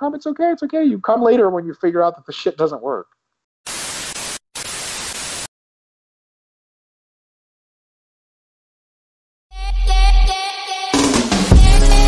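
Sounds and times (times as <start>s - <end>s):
static hiss: 3.7s - 5.5s.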